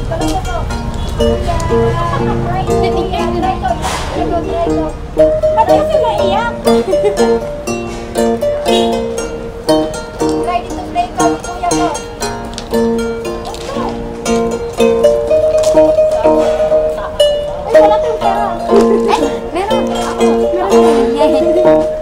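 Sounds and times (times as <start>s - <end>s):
ukulele strumming chords: 0.0s - 22.0s
person singing: 1.2s - 7.0s.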